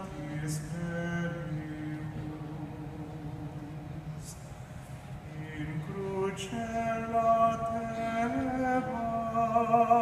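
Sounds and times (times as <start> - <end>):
man singing a chant: 0.0 - 4.4, 5.3 - 10.0.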